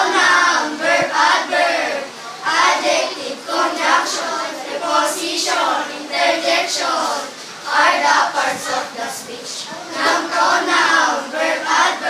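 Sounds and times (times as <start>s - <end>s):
children singing together: 0.0s - 12.0s.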